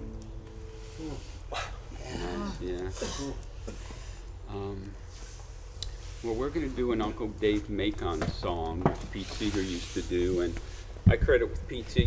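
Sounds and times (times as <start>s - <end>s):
people talking quietly: 0.8s - 5.0s.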